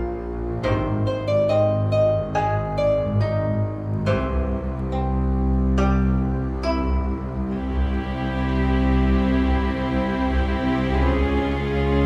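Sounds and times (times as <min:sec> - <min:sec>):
music of long held chords: 0:00.0 - 0:12.0.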